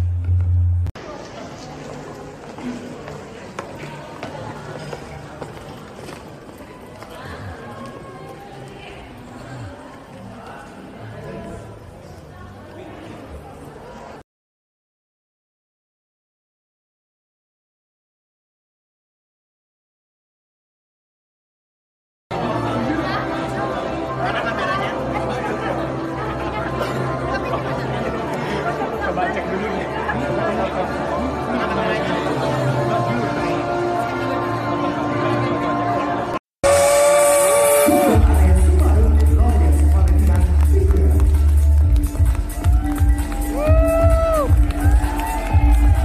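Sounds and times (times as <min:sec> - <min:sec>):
indistinct chatter of many people: 0:01.0 - 0:14.2, 0:22.3 - 0:46.0.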